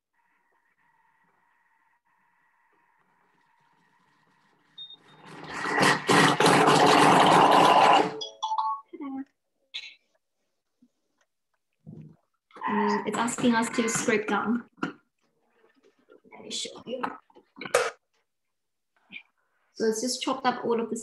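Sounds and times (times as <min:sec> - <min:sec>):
food processor blades chopping: 0:05.3 - 0:08.2.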